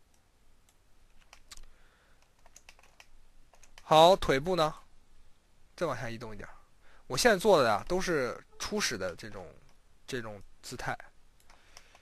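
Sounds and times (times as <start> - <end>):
mouse and keyboard clicks: 0.1 - 3.9.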